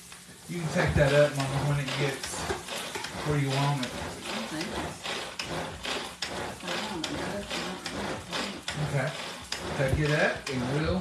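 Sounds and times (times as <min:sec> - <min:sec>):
string food chopper whirring: 0:00.5 - 0:11.0.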